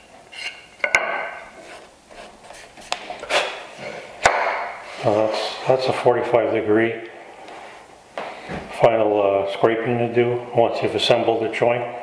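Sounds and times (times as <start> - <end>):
wood pieces knocking and rubbing: 0.3 - 4.8
sharp wooden knock: 4.2 - 4.8.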